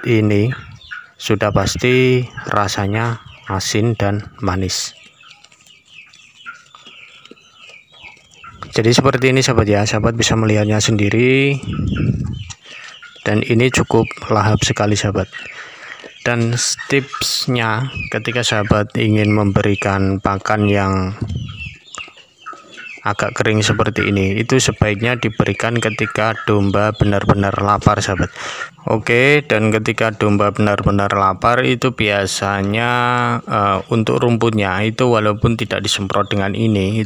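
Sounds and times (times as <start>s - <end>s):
chickens clucking: 0.0s - 37.0s.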